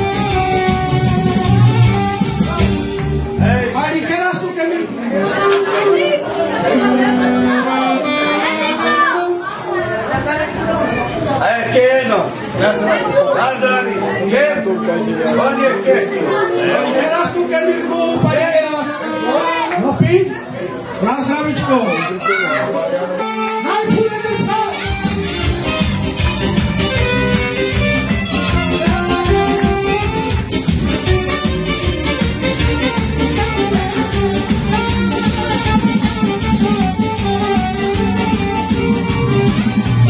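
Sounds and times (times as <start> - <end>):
overlapping voices: 0.0 - 4.1, 4.7 - 11.4, 12.3 - 21.0, 23.2 - 40.0
crowd chatter: 0.0 - 40.0
man talking into microphone: 3.4 - 5.4, 11.4 - 20.4, 21.0 - 25.1.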